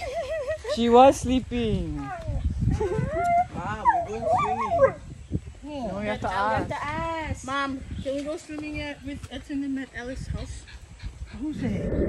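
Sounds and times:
dog howling and whining: 0:03.0 - 0:05.0.

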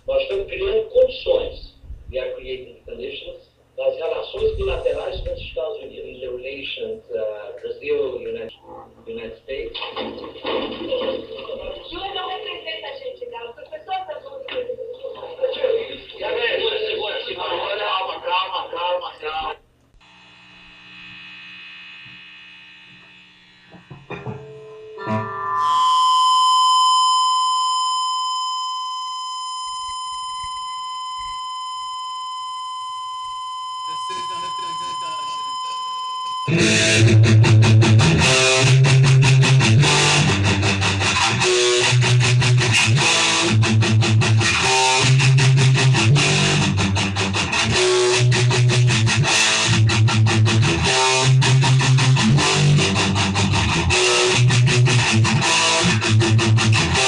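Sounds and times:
steady high tone: 0:24.7 - 0:37.4
punk band playing: 0:36.5 - 0:57.0.

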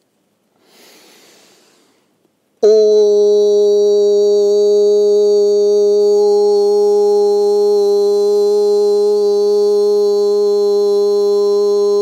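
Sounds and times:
loud steady held tone: 0:02.6 - 0:12.0.

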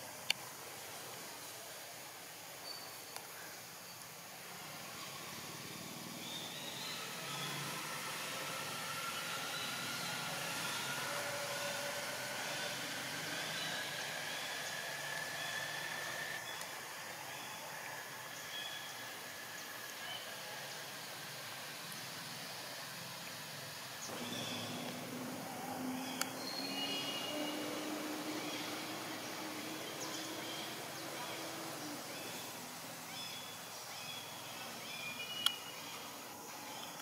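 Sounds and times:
outdoor hiss: 0:00.0 - 0:37.0
distant engine humming: 0:04.6 - 0:16.5, 0:24.1 - 0:33.1.

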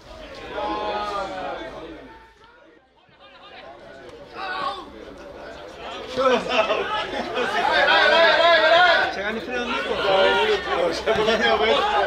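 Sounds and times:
men shouting and calling: 0:00.0 - 0:12.0.

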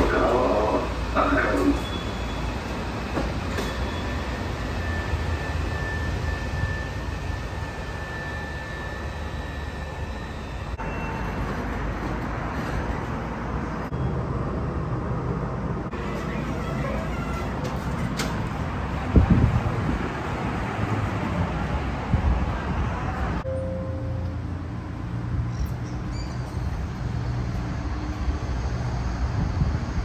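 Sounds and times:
train low rumble: 0:00.0 - 0:30.0.

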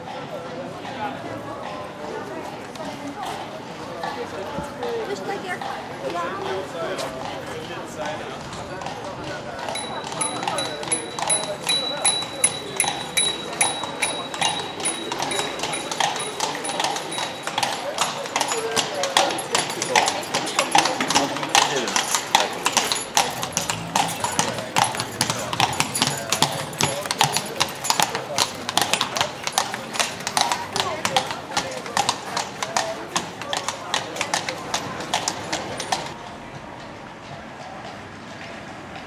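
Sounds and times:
people's voices: 0:00.0 - 0:39.0
horse hooves on pavement: 0:00.1 - 0:39.0.

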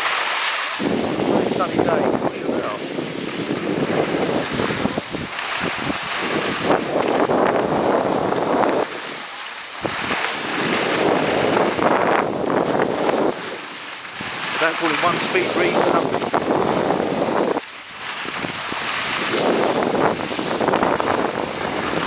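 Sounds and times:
skis scraping over snow: 0:00.0 - 0:22.0
wind on microphone: 0:00.0 - 0:22.0.

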